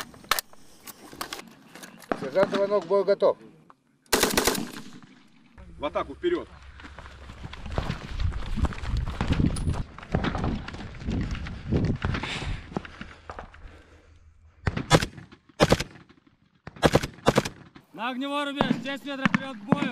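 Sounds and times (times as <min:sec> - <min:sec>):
assault rifle gunfire: 0:04.1 - 0:05.2, 0:14.8 - 0:16.0, 0:16.8 - 0:17.6.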